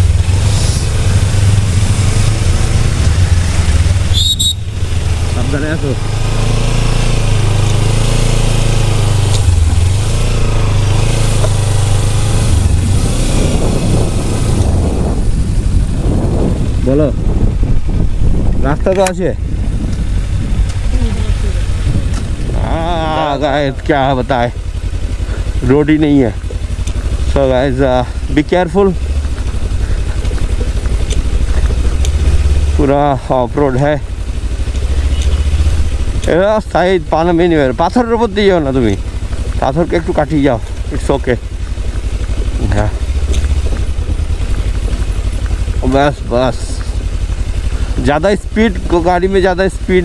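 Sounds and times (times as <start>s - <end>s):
motorcycle engine running: 0.0s - 50.0s
wind rumble on microphone: 10.7s - 23.7s
tyres rolling over gravel: 21.4s - 50.0s.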